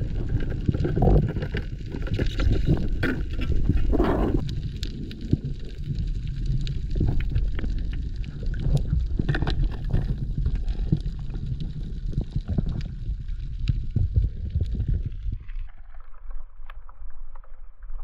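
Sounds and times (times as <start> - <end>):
low underwater rumble: 0.0 - 18.0
sharp clicks and crackles: 0.0 - 18.0
water gurgle: 0.0 - 18.0.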